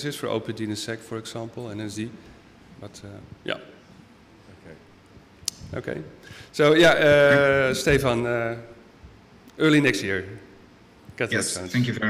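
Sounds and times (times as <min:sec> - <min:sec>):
man speaking into a microphone: 0:05.7 - 0:08.7.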